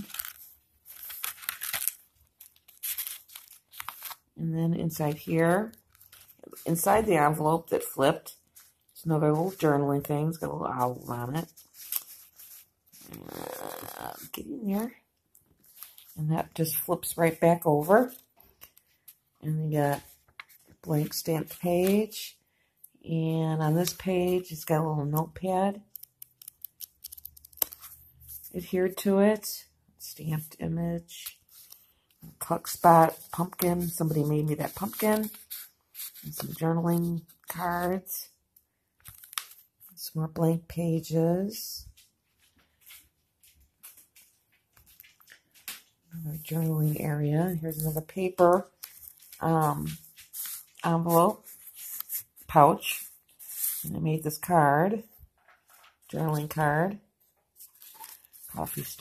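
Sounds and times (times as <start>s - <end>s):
paper pages rustling: 0.0s - 4.3s, 5.0s - 7.4s, 8.4s - 14.4s, 15.4s - 19.2s, 19.9s - 22.2s, 31.2s - 38.0s, 39.0s - 40.0s, 41.9s - 53.8s, 55.3s - 56.6s, 57.2s - 59.0s.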